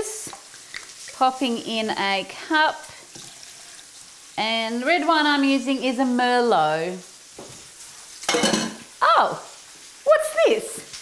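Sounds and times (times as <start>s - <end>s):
meat sizzling in a pan: 0.0s - 11.0s.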